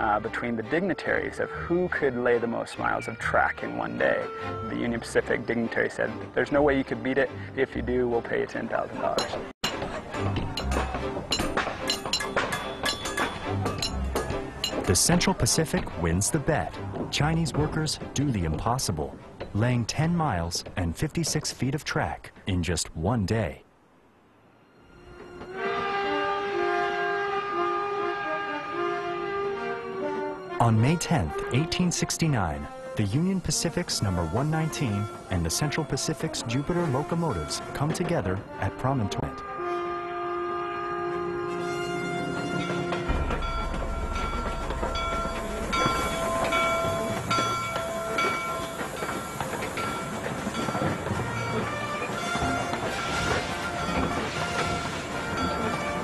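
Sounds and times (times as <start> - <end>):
background music: 0.0 - 23.6, 24.5 - 56.0
steam locomotive whistle: 24.8 - 30.5, 39.4 - 56.0.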